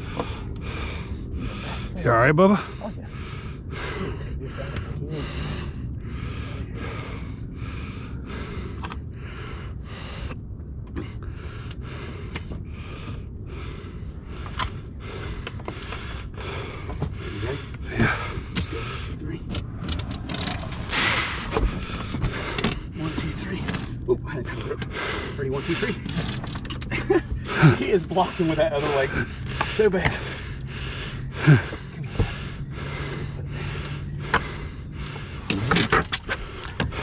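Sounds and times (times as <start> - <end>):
man gasping for breath: 0.0 - 23.9, 24.6 - 37.0.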